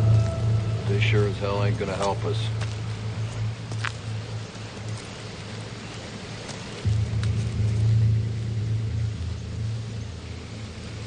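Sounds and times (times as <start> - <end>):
deep low rumble: 0.0 - 5.0, 6.8 - 11.0.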